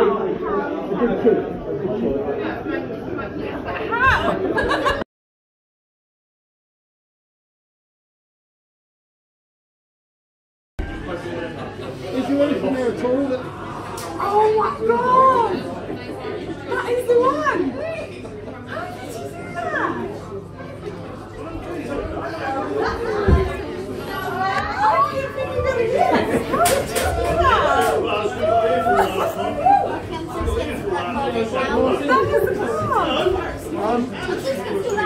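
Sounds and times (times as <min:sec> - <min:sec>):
people chattering excitedly: 0:00.0 - 0:05.0, 0:10.8 - 0:35.0.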